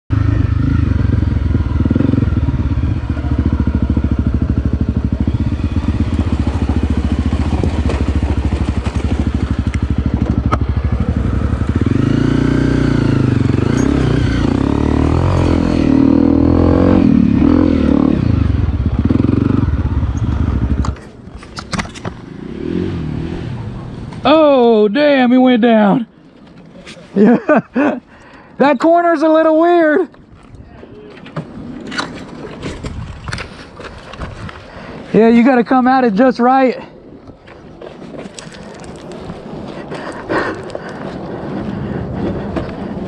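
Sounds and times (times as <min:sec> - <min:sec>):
motorcycle engine revving: 0:00.1 - 0:21.2, 0:22.1 - 0:24.1.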